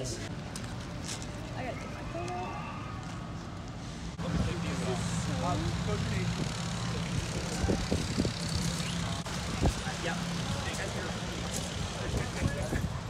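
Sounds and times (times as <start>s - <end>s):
faint voices: 0.0s - 13.0s
heavy machinery engine drone: 3.0s - 13.0s.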